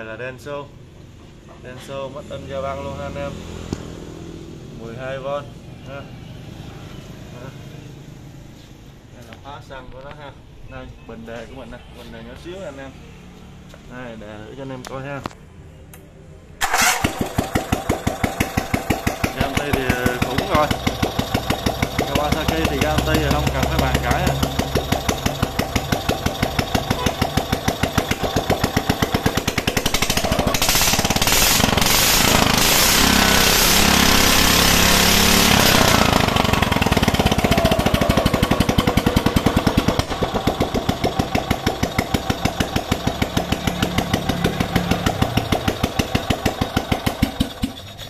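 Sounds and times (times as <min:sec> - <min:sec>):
petrol engine running and revving: 0:16.6 - 0:48.0.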